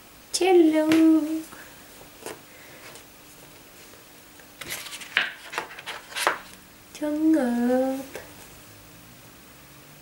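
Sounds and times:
book page turning: 4.6 - 6.5.

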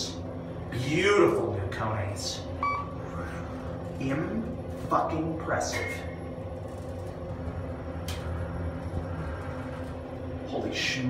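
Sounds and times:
elevator low hum: 0.0 - 11.0.

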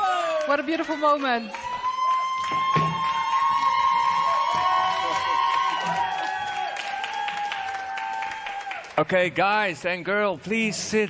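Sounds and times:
celebratory cheering: 0.0 - 9.0
held whoop: 1.5 - 8.8.

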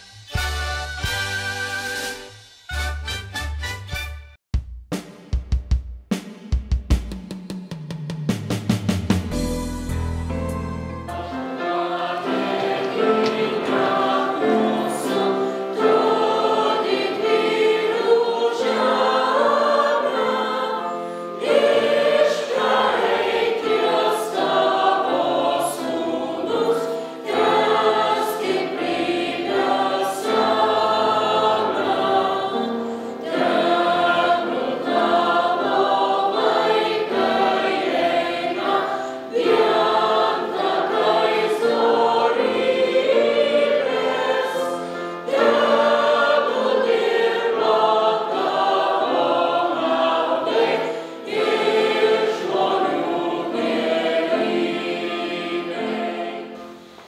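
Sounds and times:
choir singing: 10.9 - 57.0.

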